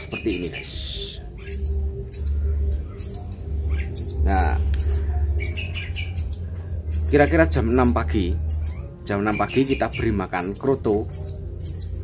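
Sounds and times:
young bird chirping: 0.0 - 12.0.

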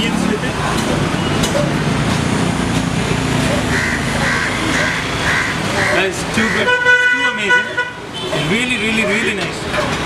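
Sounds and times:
street traffic: 0.0 - 10.0.

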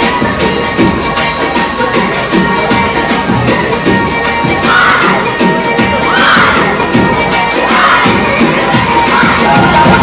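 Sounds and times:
bhangra music with drum beat: 0.0 - 10.0
group of voices shouting and cheering: 4.2 - 10.0.

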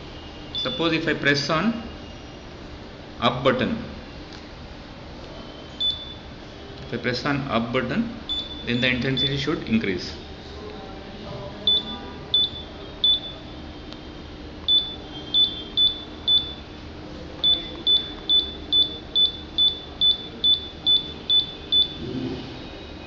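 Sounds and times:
high-pitched electronic beeps: 0.5 - 1.1, 5.6 - 6.3, 8.3 - 9.6, 11.7 - 13.5, 14.6 - 16.7, 17.4 - 22.0.

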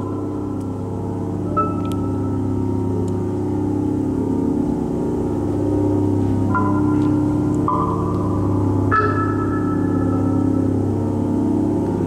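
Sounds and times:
strong low hum: 0.0 - 12.0
synthesizer drone: 0.0 - 12.0.

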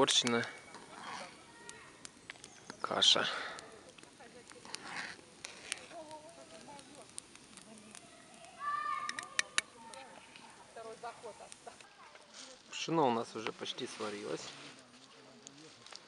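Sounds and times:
metal spoon clicking on cauldron: 9.1 - 9.7.

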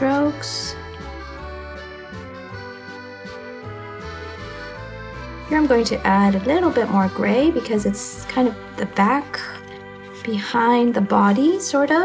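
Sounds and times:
instrumental background music: 0.0 - 12.0.

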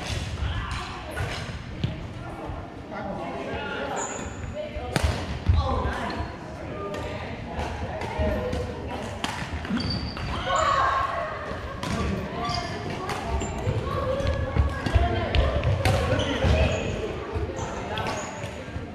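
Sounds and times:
sneaker squeaks: 3.8 - 4.6, 9.6 - 11.0, 11.9 - 14.0, 15.6 - 18.7.

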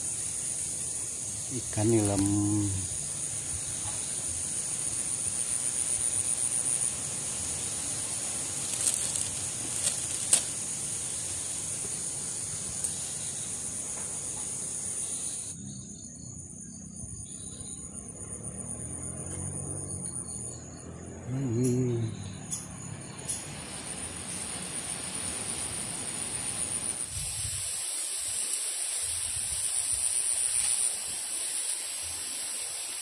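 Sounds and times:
background hiss: 0.0 - 19.8, 20.9 - 33.0
high-pitched insect chorus: 0.0 - 33.0.

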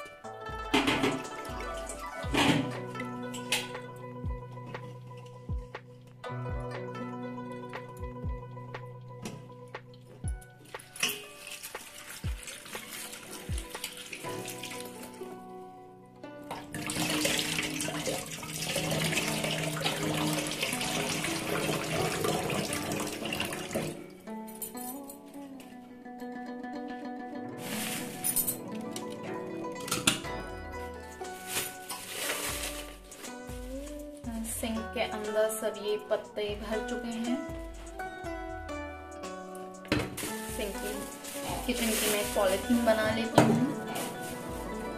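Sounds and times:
background music: 0.0 - 44.9.

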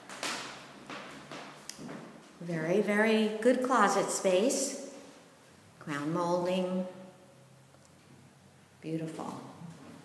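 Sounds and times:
footsteps on hardwood floor: 0.0 - 2.4.

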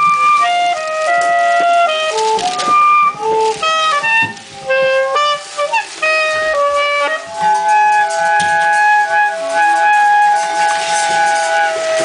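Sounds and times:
wind instrument drone: 0.0 - 12.0.

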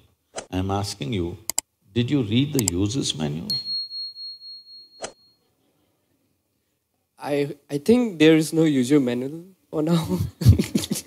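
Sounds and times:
thin high chime tone: 3.5 - 5.5.

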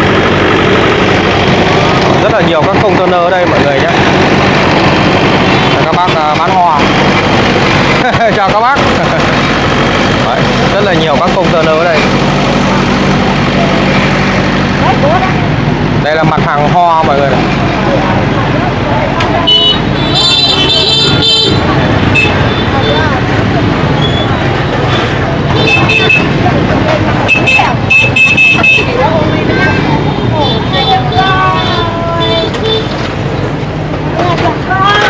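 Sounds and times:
engine running: 0.0 - 35.0
people talking: 2.1 - 4.0, 5.7 - 6.9, 8.0 - 9.4, 10.2 - 32.8, 34.1 - 35.0
short horn beeps: 25.5 - 26.3, 27.3 - 29.0.

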